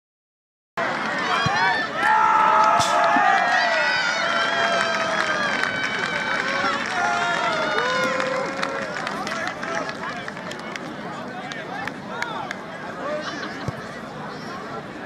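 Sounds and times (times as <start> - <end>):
people shouting: 1.2 - 4.9.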